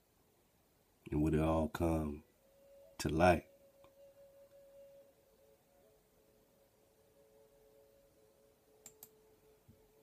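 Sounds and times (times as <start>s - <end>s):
faint steady pure tone: 0.0s - 10.0s.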